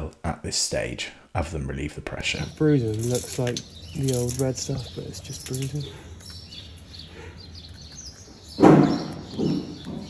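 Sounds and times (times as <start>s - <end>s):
birds chirping: 0.8s - 10.0s.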